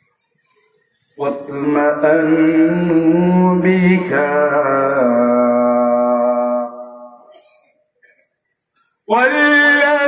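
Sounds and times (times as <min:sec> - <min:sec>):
man chanting melodically: 0:01.2 - 0:07.3, 0:09.0 - 0:10.0.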